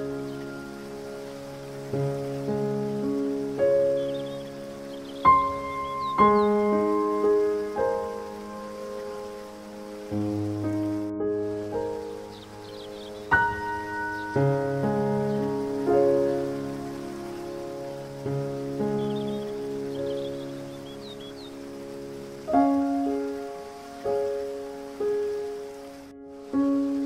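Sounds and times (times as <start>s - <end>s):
rain-like water hiss: 0.0s - 27.0s
slow soft piano music: 0.0s - 27.0s
faint high bird chirps: 3.8s - 7.7s, 12.0s - 14.5s, 18.8s - 21.6s.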